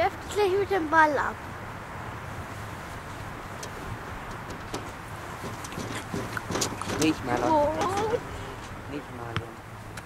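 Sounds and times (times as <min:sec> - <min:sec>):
outdoor background rumble: 0:00.0 - 0:10.0
faint clicks and knocks: 0:03.6 - 0:08.8.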